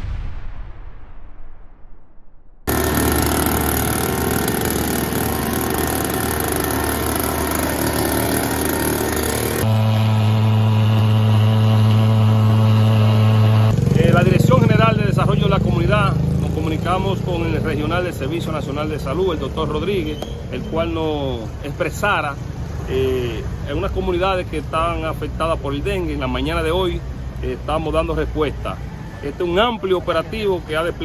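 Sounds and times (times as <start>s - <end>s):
mist blower engine running: 2.7s - 28.9s.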